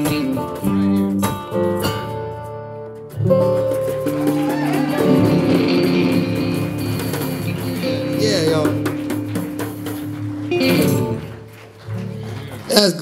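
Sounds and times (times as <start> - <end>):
acoustic blues trio playing: 0.0 - 13.0.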